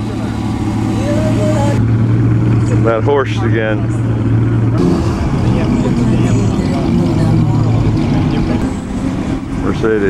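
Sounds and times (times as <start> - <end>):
people talking: 0.0 - 1.8, 5.4 - 8.8, 9.6 - 10.0
car engines droning slowly past: 0.0 - 10.0.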